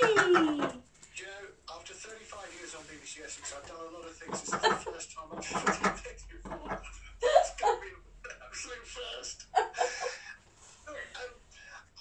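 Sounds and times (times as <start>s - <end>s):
indistinct voices talking: 0.0s - 0.8s, 3.5s - 10.2s.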